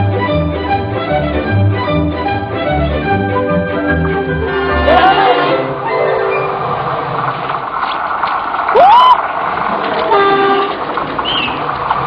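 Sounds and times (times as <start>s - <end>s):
train running noise: 0.0s - 12.0s
train horn blast: 4.5s - 5.8s, 10.1s - 10.8s.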